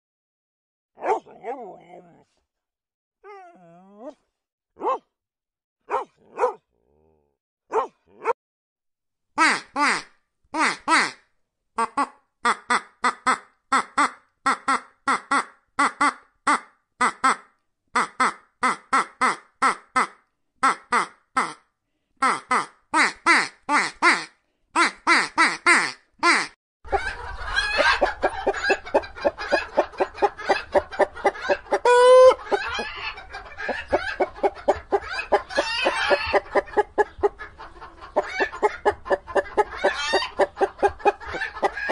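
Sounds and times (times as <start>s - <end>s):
dog barking: 1.0s - 1.6s, 4.8s - 5.1s, 5.9s - 6.7s, 7.7s - 8.4s
hens clucking: 26.9s - 41.9s.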